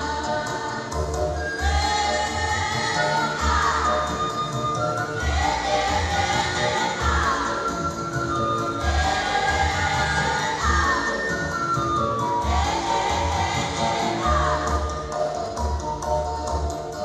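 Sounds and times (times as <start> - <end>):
women's choir singing: 0.0 - 11.4, 12.2 - 15.4.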